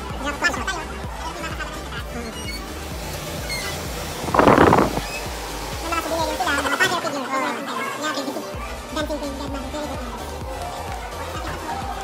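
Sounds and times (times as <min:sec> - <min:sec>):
loud rush of noise on microphone: 0:02.8 - 0:06.4.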